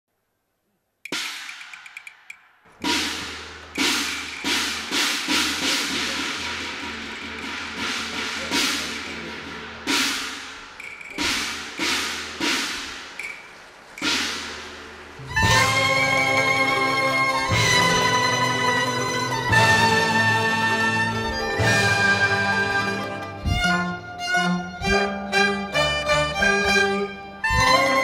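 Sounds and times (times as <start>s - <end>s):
opera percussion drum gongs cymbals: 1.1s - 28.0s.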